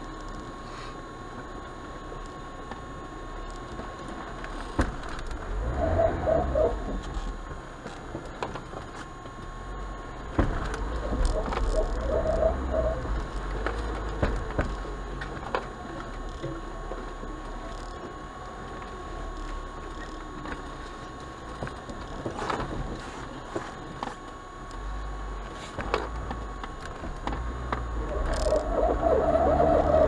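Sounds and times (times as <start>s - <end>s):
car engine rumbling: 0.0s - 30.0s.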